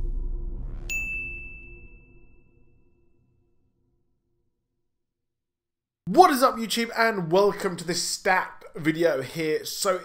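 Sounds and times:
low rumble: 0.0s - 4.0s
bright ding: 0.9s - 3.0s.

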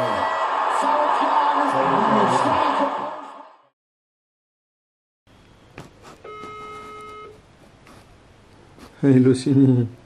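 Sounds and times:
phone ringback beep: 6.2s - 7.4s.

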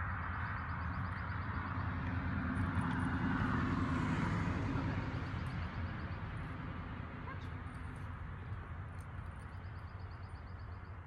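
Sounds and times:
road vehicle rumbling by: 0.0s - 10.9s.

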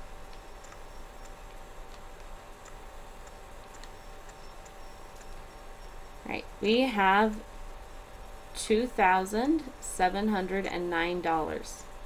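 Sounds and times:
low electrical hum with whine: 0.0s - 12.0s.

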